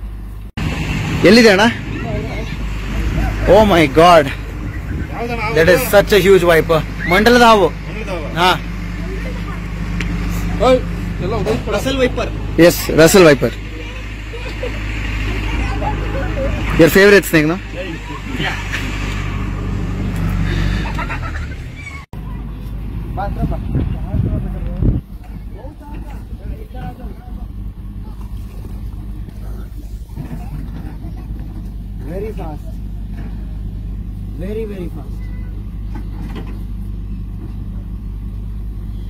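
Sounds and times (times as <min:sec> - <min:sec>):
low engine hum: 0:00.0 - 0:39.0.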